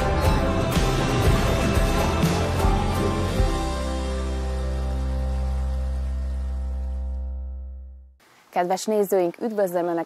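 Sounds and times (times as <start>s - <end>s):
tv theme music: 0.0s - 8.0s.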